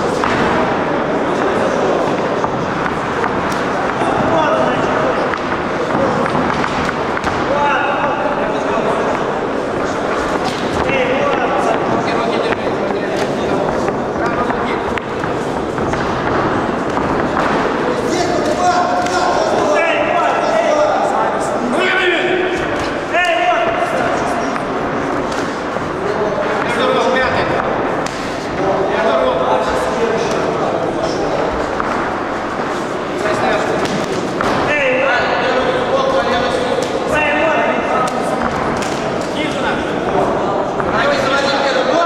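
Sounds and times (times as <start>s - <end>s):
voices shouting in echoing hall: 0.0s - 42.0s
person shouting in an echoing hall: 7.3s - 9.8s, 17.9s - 24.9s.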